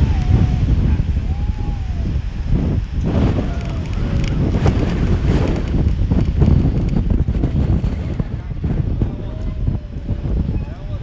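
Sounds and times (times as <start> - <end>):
wind buffeting microphone: 0.0 - 11.0
faint voice: 9.0 - 11.0.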